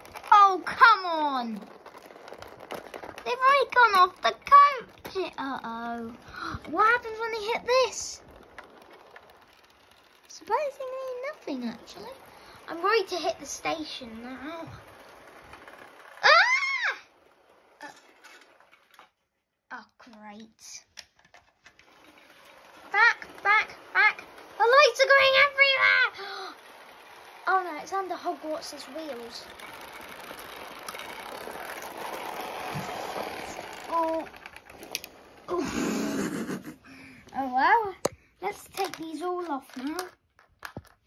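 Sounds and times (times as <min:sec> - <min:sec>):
model train running on track: 0:00.0 - 0:19.2, 0:20.0 - 0:40.9
person exhaling: 0:35.5 - 0:37.3.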